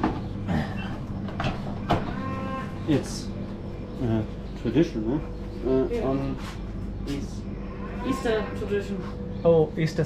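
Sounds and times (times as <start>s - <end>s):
cow mooing: 1.8s - 3.0s, 7.5s - 9.0s.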